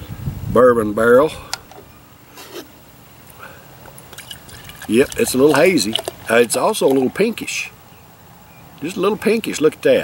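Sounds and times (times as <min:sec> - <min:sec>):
glass bottle and mug handling: 0:04.1 - 0:07.2.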